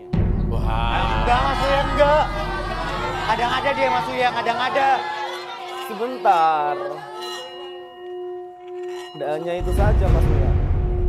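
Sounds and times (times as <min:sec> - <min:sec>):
metal singing bowl ringing: 0:05.3 - 0:10.0.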